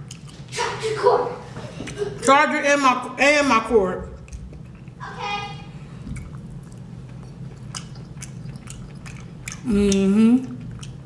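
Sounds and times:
wet chewing: 0.0 - 0.5, 4.0 - 5.0, 5.8 - 11.0.

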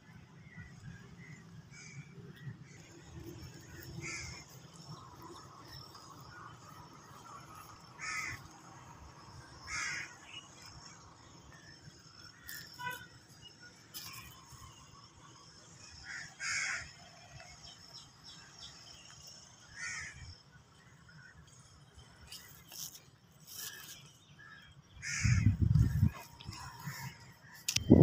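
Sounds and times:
faint outdoor background: 0.0 - 28.0.

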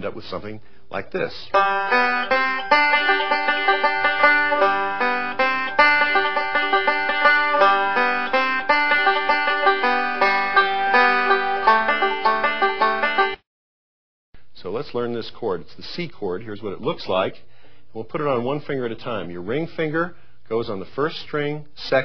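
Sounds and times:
banjo picking: 1.4 - 13.4.

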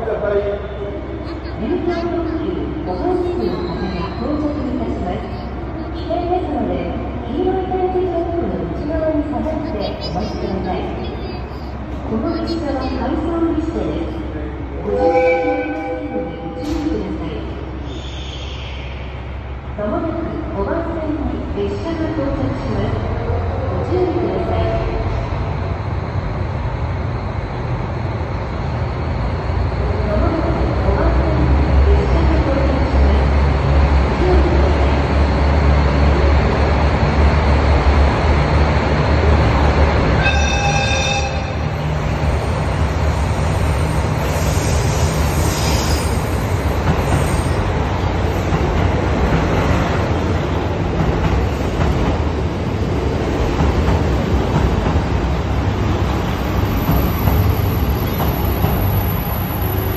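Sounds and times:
diesel train engine rumble: 0.0 - 59.9
rail noise: 0.0 - 59.9
train horn blast: 14.8 - 16.6, 40.2 - 41.5.

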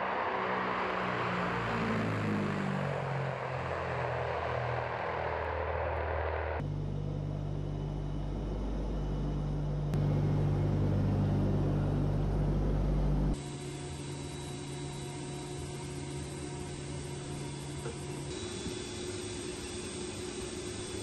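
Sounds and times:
deep engine drone: 0.0 - 21.0
turboprop engines running: 0.0 - 21.0.

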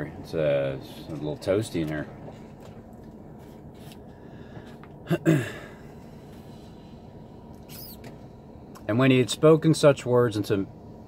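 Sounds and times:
car heater blower humming: 0.0 - 11.0
high-pitched squeak: 7.7 - 8.0.

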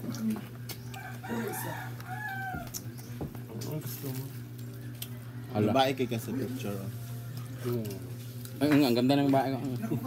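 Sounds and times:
steady low hum: 0.0 - 10.0
rooster crowing: 0.9 - 2.9.

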